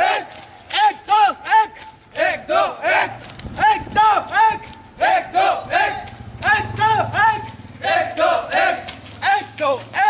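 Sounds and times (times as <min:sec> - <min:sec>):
men shouting a rhythmic chant: 0:00.0 - 0:10.0.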